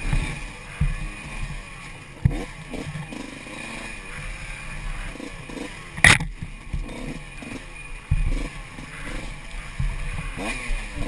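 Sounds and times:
bike knocking over bumps: 0:00.0 - 0:03.2, 0:06.0 - 0:07.1, 0:08.0 - 0:08.5, 0:09.6 - 0:11.0
tyres rumbling on rough trail: 0:00.0 - 0:11.0
camera rattling: 0:06.0 - 0:06.9.

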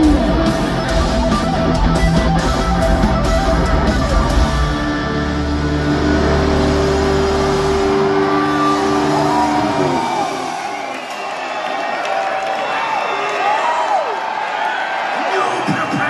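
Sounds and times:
heavy metal guitars and bass chord: 0:00.0 - 0:10.6
crowd cheering and whooping: 0:00.0 - 0:16.0.

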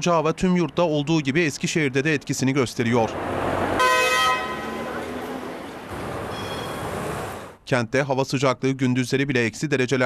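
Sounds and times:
city traffic noise: 0:00.0 - 0:07.7
vehicle horn honk: 0:03.8 - 0:05.0.

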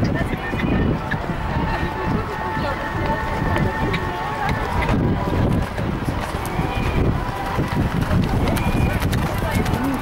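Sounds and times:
muffled hoofbeats on sand: 0:00.0 - 0:10.0
wind rumble on microphone: 0:00.0 - 0:10.0.

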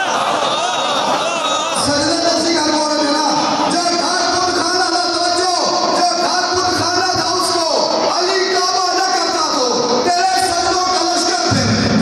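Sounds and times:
man reciting over loudspeaker: 0:01.4 - 0:12.0.

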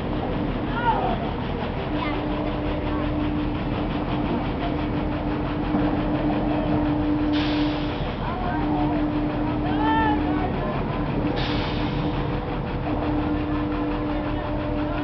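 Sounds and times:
amusement ride machinery hum: 0:00.0 - 0:15.0.

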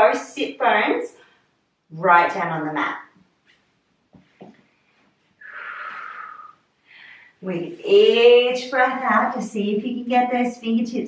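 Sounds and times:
woman breathing: 0:05.4 - 0:07.4.

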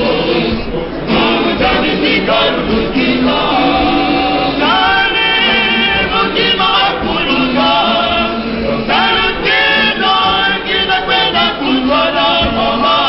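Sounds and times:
choir singing gospel: 0:00.0 - 0:13.0.

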